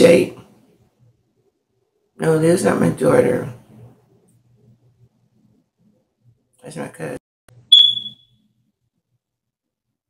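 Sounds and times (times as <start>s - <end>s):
high-pitched electronic beep: 7.7s - 8.3s.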